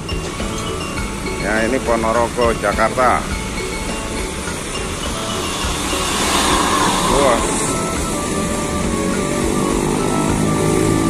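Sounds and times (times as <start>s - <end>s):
bus engine running: 0.0s - 11.0s.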